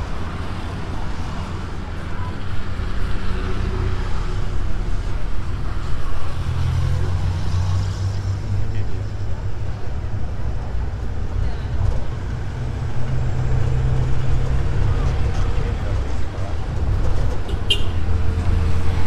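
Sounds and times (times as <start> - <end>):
road noise: 0.0 - 19.0
surrounding traffic: 0.0 - 19.0.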